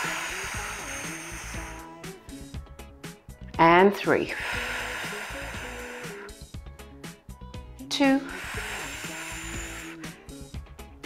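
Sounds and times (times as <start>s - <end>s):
woman exhaling: 0.0s - 1.9s, 4.3s - 6.4s, 8.1s - 10.4s
soft background music: 0.0s - 11.0s.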